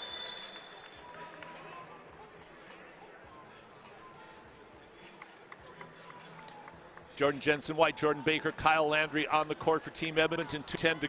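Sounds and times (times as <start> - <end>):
crowd chatter: 0.0 - 11.0
music over loudspeakers: 1.2 - 11.0.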